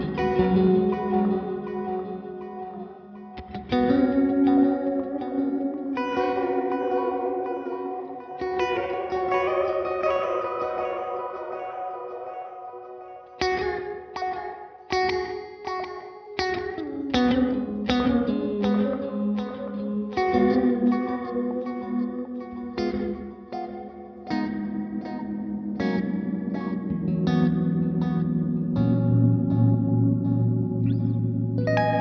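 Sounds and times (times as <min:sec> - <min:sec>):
electric guitar with reverb: 0:00.0 - 0:32.0
picked guitar notes with echoes: 0:00.0 - 0:32.0.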